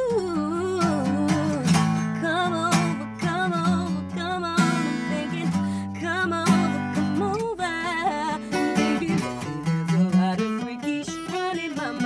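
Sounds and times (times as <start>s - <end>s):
plucked acoustic guitar: 0.0s - 12.0s.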